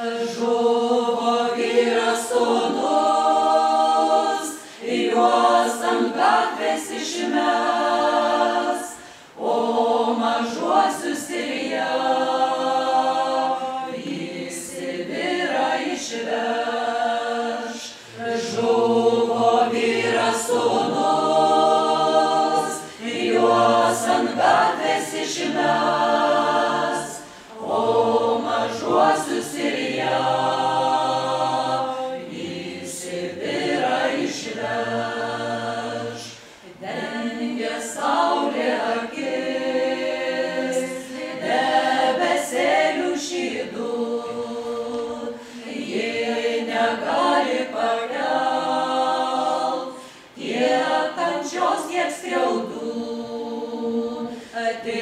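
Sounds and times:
unaccompanied choir singing: 0.0s - 55.0s.

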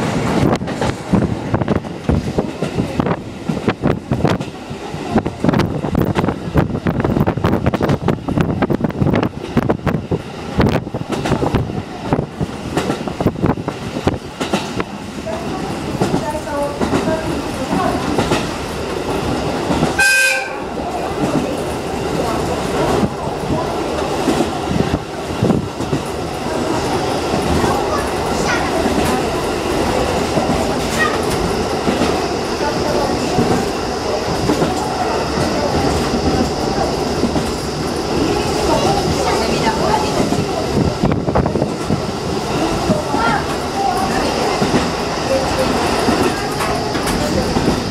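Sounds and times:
wind noise: 0.0s - 20.0s, 20.6s - 47.9s
train rumble: 0.0s - 47.9s
train horn blast: 20.0s - 20.7s.

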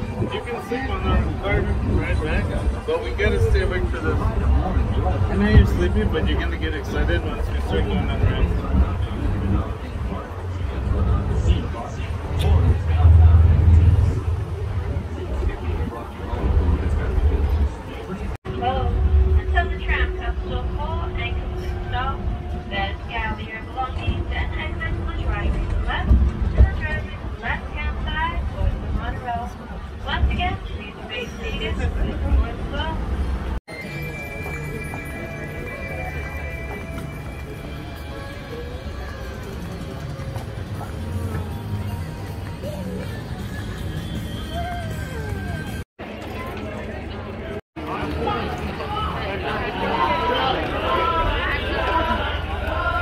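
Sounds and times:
faint passenger voices: 0.0s - 53.0s
tram rumbling: 0.0s - 53.0s.

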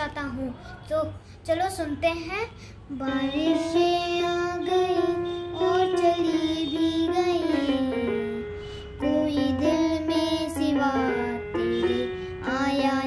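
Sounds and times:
child singing held notes: 2.8s - 13.0s
electronic keyboard: 3.0s - 13.0s.

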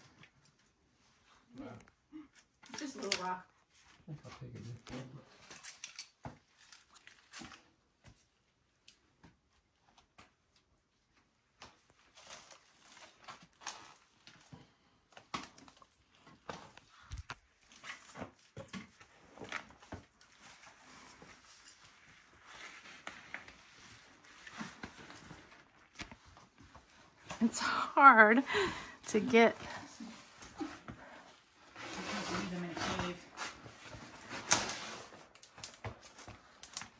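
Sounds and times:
clothing rustle: 15.9s - 36.9s.

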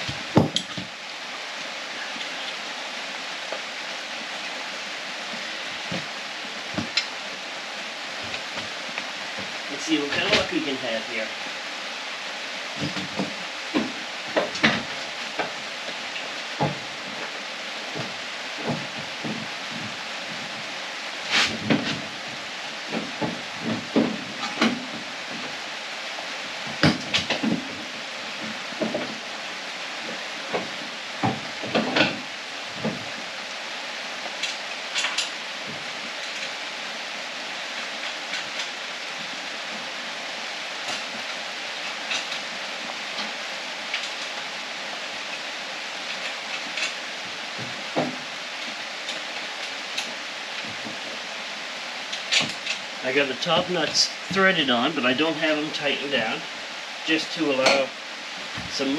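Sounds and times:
steady hiss: 0.0s - 58.9s
metal clunks and knocks: 0.1s - 0.9s, 26.7s - 27.8s.

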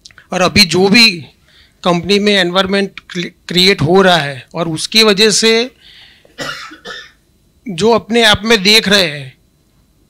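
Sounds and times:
man speaking: 0.3s - 5.8s, 7.7s - 9.4s
man coughing: 6.3s - 7.2s.

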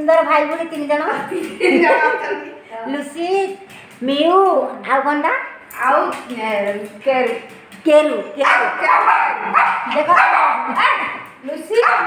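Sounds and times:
small dog yapping: 8.5s - 11.2s.

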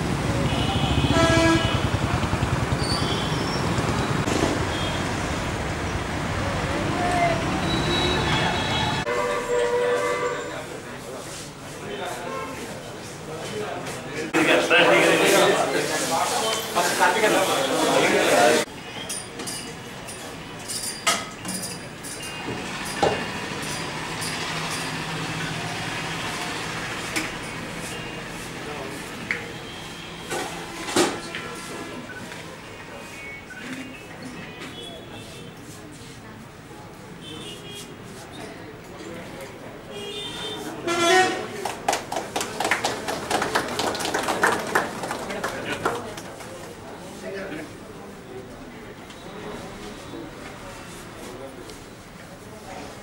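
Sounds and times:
road traffic noise: 0.0s - 53.0s
vehicle horn: 0.4s - 3.8s, 7.7s - 10.7s, 12.2s - 12.7s, 39.9s - 41.6s.

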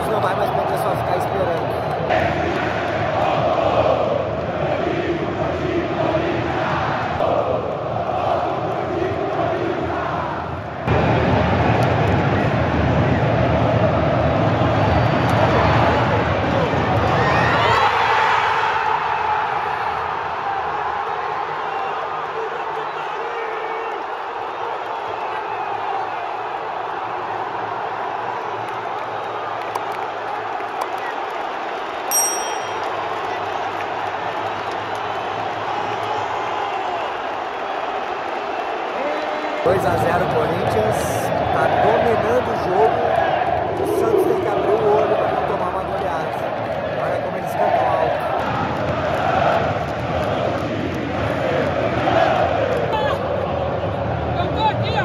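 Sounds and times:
stadium crowd chanting: 0.0s - 32.0s, 32.6s - 55.0s
crowd roaring and cheering: 0.0s - 55.0s.

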